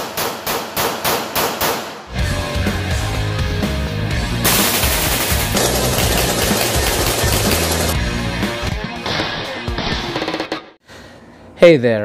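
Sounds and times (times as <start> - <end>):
background music: 2.1 - 10.6
rapid gunfire rattle: 4.5 - 8.0.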